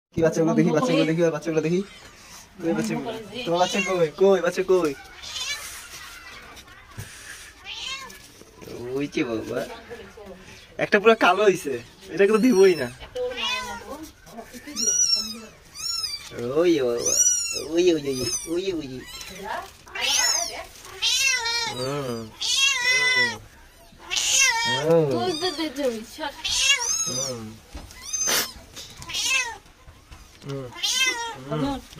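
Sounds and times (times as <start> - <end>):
cat meowing: 3.4 - 4.2, 4.9 - 6.7, 7.5 - 8.4, 12.4 - 29.8, 30.6 - 31.9
kitten mewing: 17.0 - 23.4, 24.0 - 25.8, 26.4 - 29.6, 30.4 - 31.9.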